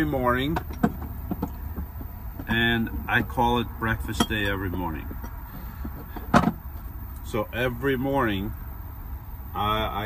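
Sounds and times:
object clunk: 5.2s - 6.6s.

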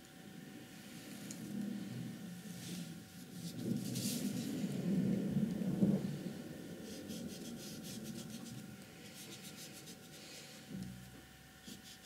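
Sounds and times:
paintbrush stroking paper: 2.6s - 4.6s, 6.8s - 10.4s, 11.6s - 12.0s.

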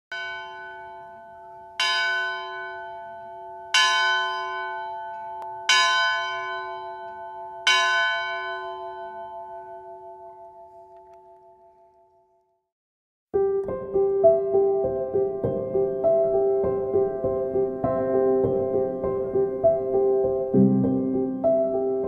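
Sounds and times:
church bell ringing: 0.1s - 12.4s.

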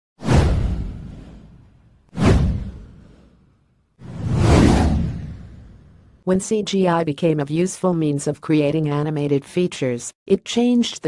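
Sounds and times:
whoosh sound effects: 2.2s - 6.2s.

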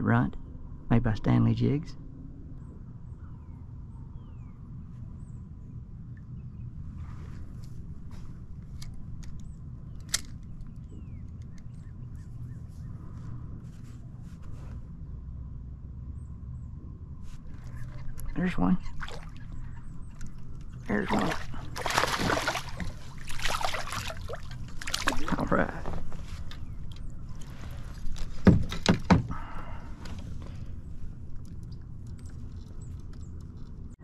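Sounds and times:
steady low rumble: 0.0s - 34.0s
birds chirping and whistling: 9.4s - 13.3s, 17.5s - 21.8s.

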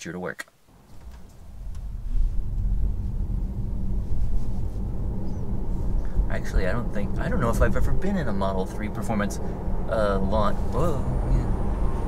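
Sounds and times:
car road and drivetrain rumble: 0.7s - 12.0s.

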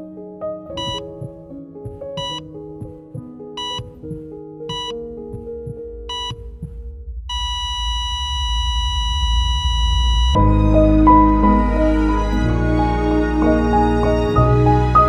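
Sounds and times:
heart monitor beeping: 0.8s - 10.4s
steady flatline tone: 3.6s - 10.4s
low rumble: 5.0s - 11.1s
soft sustained music: 10.4s - 15.0s.

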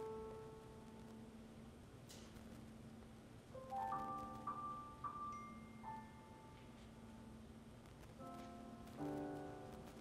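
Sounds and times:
quiet piano music: 0.0s - 1.8s, 3.4s - 10.0s.

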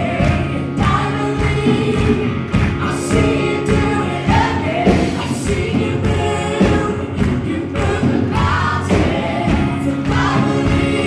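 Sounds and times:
women singing gospel: 0.0s - 11.0s.

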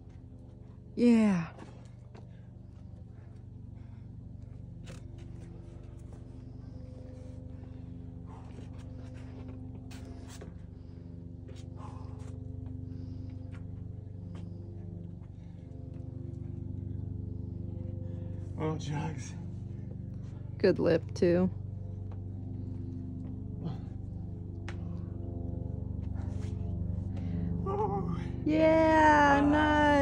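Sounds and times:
low hum of sustained tones: 0.0s - 30.0s.

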